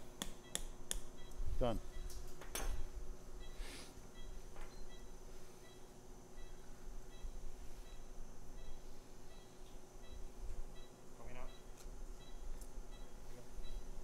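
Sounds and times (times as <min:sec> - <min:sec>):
steady equipment hum: 0:00.0 - 0:14.0
patient monitor beeping: 0:01.2 - 0:14.0.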